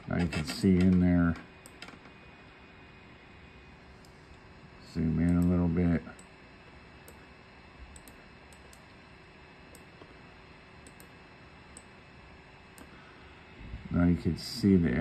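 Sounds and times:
computer mouse clicks: 0:07.9 - 0:09.0, 0:10.8 - 0:11.1.

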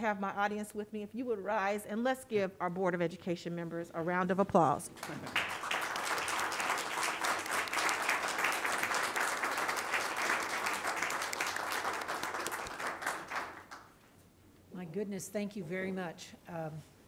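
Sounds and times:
small group applauding: 0:05.0 - 0:14.0.

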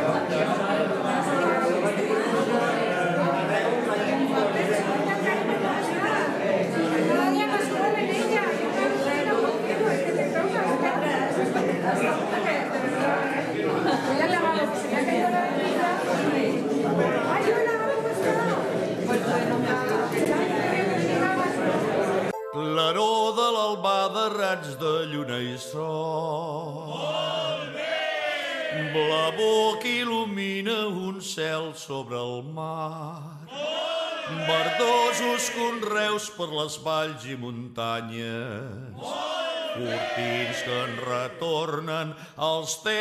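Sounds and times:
crowd chatter: 0:00.0 - 0:23.2, 0:33.5 - 0:36.4, 0:39.1 - 0:43.0
voices singing long notes: 0:20.7 - 0:30.8, 0:32.2 - 0:37.0, 0:39.0 - 0:42.8.

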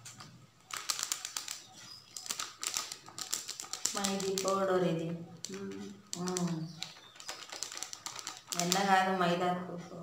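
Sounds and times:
packet crackling and rustling: 0:00.0 - 0:09.0
powder ticking into steel bowl: 0:00.7 - 0:09.2
woman's voice: 0:03.9 - 0:06.8, 0:08.6 - 0:10.0.

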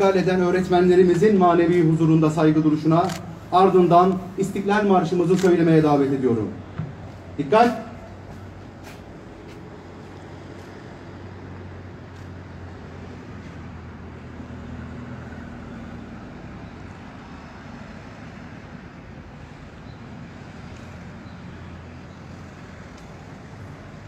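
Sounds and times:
low hum of road traffic: 0:00.0 - 0:24.0.

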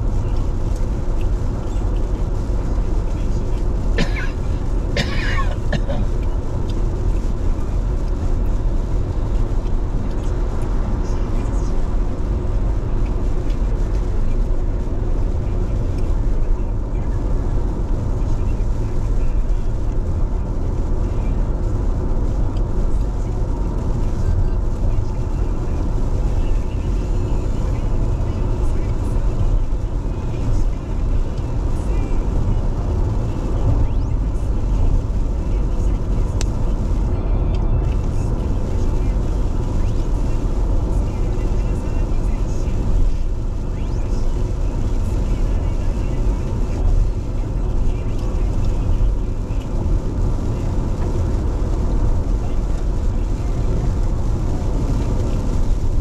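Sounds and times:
car road and tyre noise: 0:00.0 - 0:56.0.

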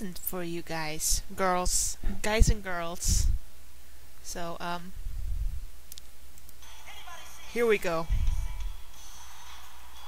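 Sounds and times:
steady low hum: 0:00.0 - 0:10.0
faint music: 0:06.4 - 0:10.0.

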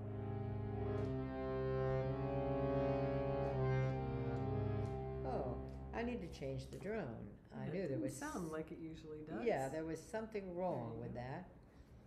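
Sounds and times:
harmonium chords over drone: 0:00.0 - 0:06.3.

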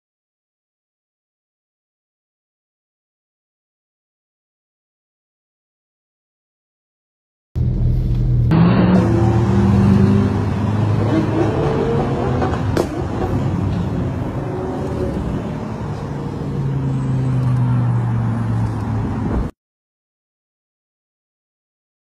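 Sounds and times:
car engines driving past: 0:07.6 - 0:19.5.

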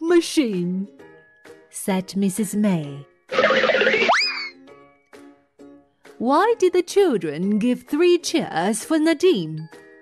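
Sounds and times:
children's background music: 0:00.0 - 0:10.0
cartoon rushing noise: 0:03.3 - 0:04.6.

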